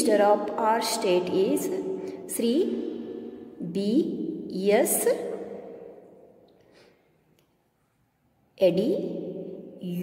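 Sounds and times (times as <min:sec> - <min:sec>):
woman's voice: 0:00.0 - 0:02.9, 0:03.6 - 0:05.6, 0:08.6 - 0:09.2.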